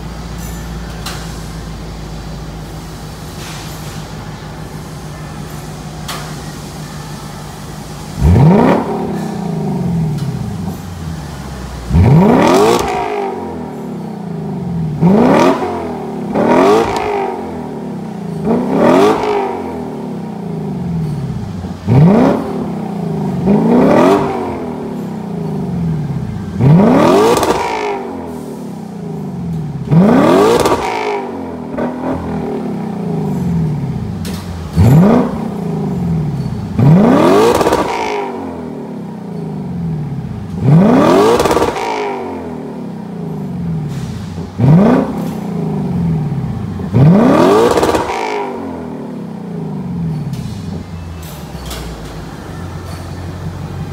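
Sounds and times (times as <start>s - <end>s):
car engine revving: 8.0s - 51.8s.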